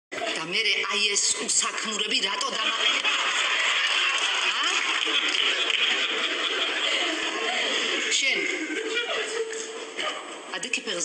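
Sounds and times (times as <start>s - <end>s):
audience laughing: 2.2s - 10.4s.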